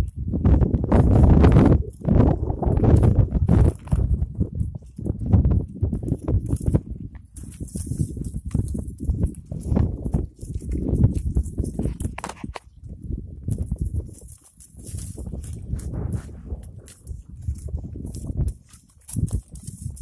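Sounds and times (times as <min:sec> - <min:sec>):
footsteps on rocky ground: 0:00.0 - 0:20.0
goat hooves on rocks: 0:00.0 - 0:20.0
low rumble on microphone: 0:00.0 - 0:20.0.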